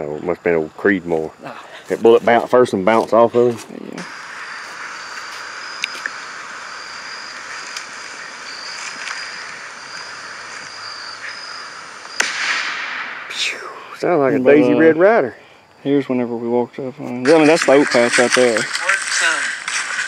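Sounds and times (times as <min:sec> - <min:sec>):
outdoor hiss: 0:00.0 - 0:20.0
rifle shot through phone speaker: 0:12.2 - 0:13.4
faint high tone: 0:14.4 - 0:15.0.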